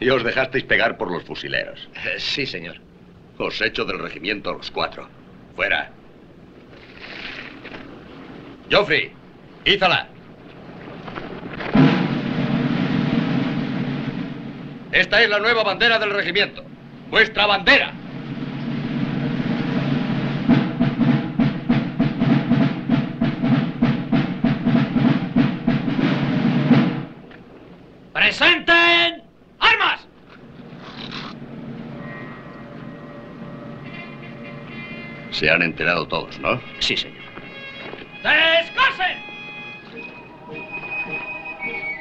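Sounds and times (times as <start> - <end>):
faint low rumble: 0.0 - 23.4, 29.3 - 38.2
military drum roll: 0.0 - 42.0
soft noise hiss: 0.0 - 42.0
steady drum beat: 11.7 - 15.4, 17.8 - 27.2, 33.8 - 42.0.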